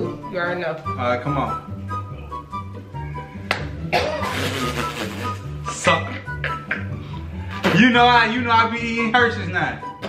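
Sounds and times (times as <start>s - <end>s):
music with steady beat: 0.0s - 8.3s
hand slapping face: 3.4s - 3.8s.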